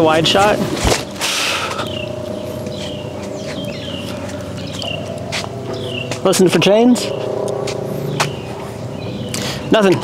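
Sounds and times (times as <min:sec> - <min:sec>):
birds chirping: 0:00.0 - 0:10.0
steady low hum: 0:00.0 - 0:10.0.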